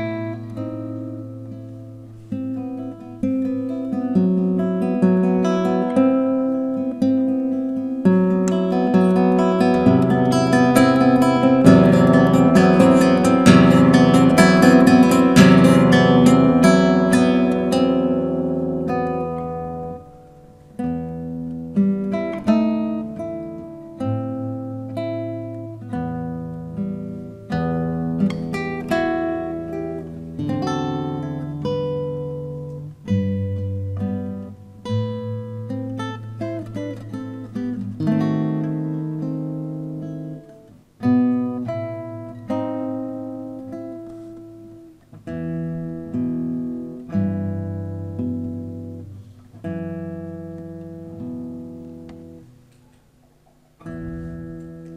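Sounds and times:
fingerstyle acoustic guitar: 0.0 - 54.9.

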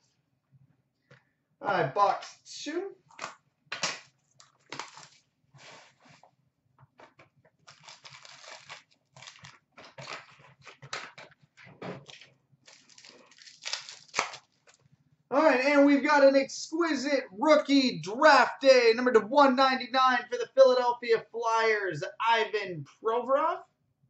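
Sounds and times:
plastic wrapping crinkling and tearing: 4.2 - 6.1, 7.6 - 14.9.

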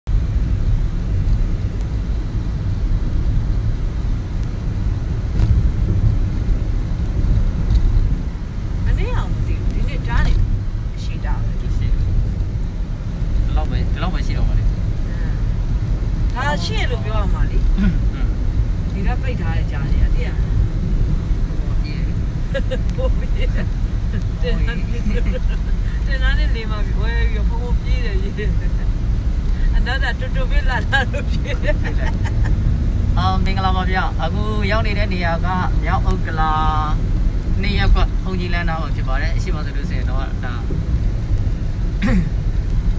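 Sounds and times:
car driving rumble from inside: 0.0 - 42.9
person speaking: 16.4 - 18.3, 21.6 - 28.8, 29.6 - 32.5.

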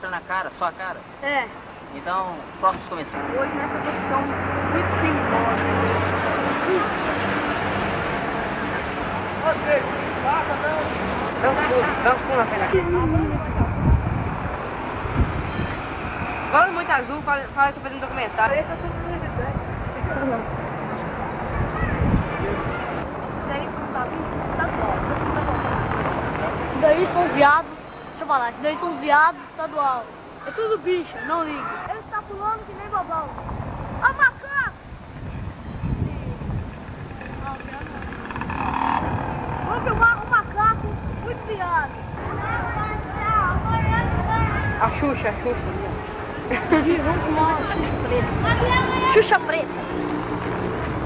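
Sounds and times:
street noise: 0.0 - 51.0
car passing close by: 2.8 - 27.9
wind rumbling on microphone: 12.3 - 27.6, 31.8 - 51.0
children's voices: 19.8 - 35.0, 35.9 - 51.0.

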